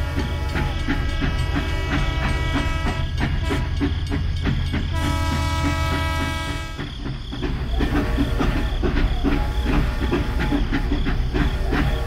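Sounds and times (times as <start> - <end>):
rhythmic chuffing: 0.0 - 12.0.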